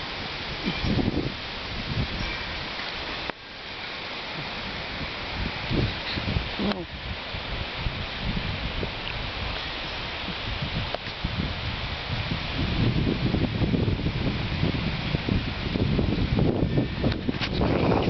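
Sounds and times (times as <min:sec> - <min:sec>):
wind noise on microphone: 0:00.0 - 0:18.0.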